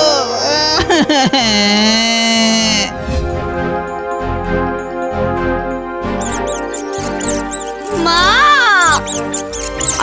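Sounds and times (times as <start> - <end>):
background music: 0.0 - 10.0
cartoon mouse squeaks: 6.2 - 10.0
loud squeal: 6.2 - 10.0.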